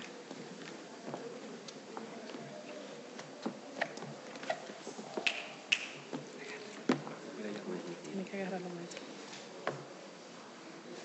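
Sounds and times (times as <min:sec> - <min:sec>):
low room background noise: 0:00.0 - 0:11.0.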